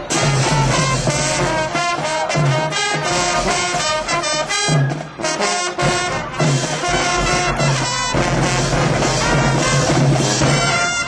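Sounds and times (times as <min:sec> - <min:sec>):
marching band playing loudly: 0:00.0 - 0:11.0.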